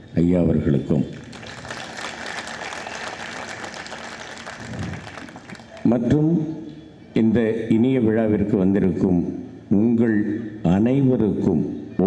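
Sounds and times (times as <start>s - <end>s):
audience applauding: 1.1s - 5.9s.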